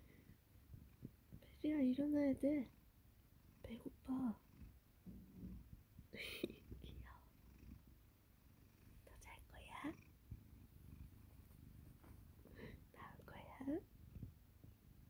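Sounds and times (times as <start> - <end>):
quiet whispering: 0.0 - 2.7, 3.6 - 7.6, 9.0 - 10.1, 10.8 - 14.3
cat purring: 0.0 - 15.0.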